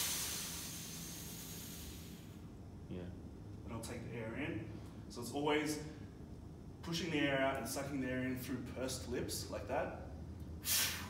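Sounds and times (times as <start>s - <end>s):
man exhaling forcefully: 0.0s - 2.3s, 10.6s - 11.0s.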